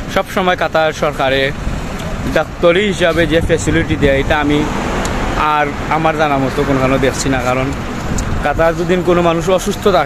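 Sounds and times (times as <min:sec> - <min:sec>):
low rumble of road traffic: 0:00.0 - 0:10.0
man talking: 0:00.0 - 0:10.0.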